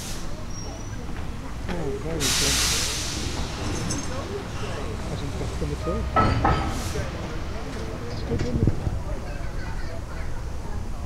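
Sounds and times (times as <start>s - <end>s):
steam hissing from locomotive: 0.0s - 1.0s, 2.0s - 7.5s
people talking: 0.0s - 11.0s.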